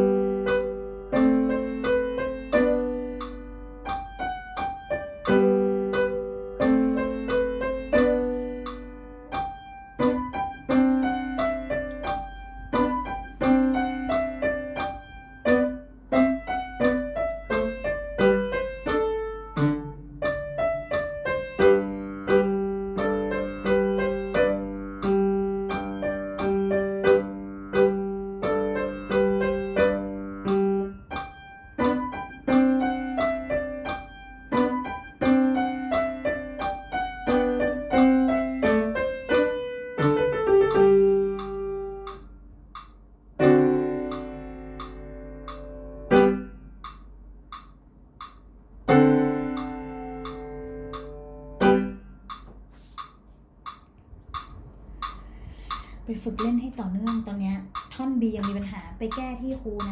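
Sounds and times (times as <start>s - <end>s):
upright piano playing: 0.0s - 47.4s, 48.0s - 52.7s.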